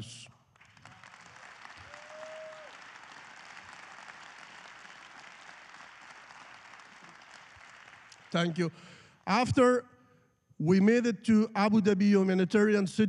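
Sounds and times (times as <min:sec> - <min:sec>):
audience applauding: 0:00.6 - 0:08.6.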